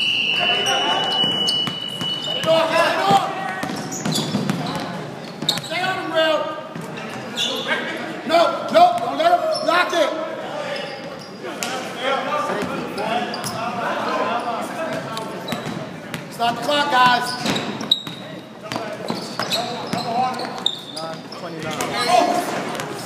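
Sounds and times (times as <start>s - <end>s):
players calling out: 0.0s - 15.8s.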